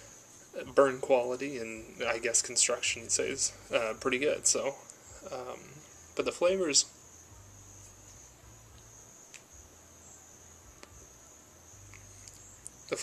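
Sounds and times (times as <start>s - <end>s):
crickets chirping: 0.0s - 13.0s.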